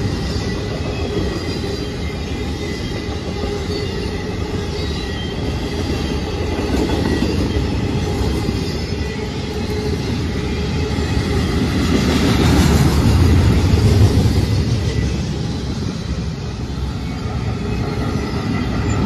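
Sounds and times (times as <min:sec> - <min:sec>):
freight train wheels rumbling: 0:00.0 - 0:19.0.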